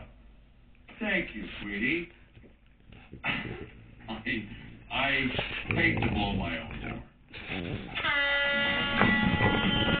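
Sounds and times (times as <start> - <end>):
air horn blast: 8.0 - 10.0.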